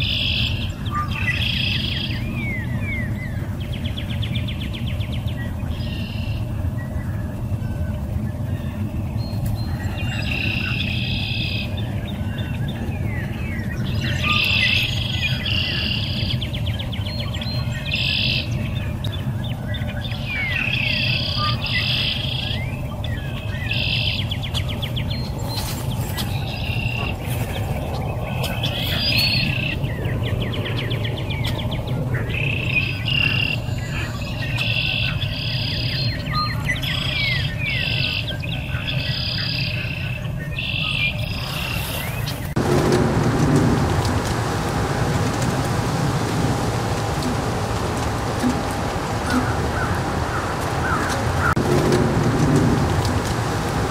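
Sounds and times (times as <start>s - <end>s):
songbirds chirping and trilling: 0.0s - 53.9s
steady low rumble: 0.0s - 53.9s.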